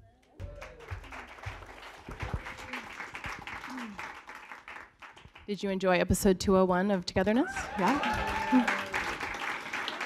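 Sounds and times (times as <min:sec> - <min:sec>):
audience applauding: 0:00.2 - 0:05.5, 0:07.5 - 0:10.0.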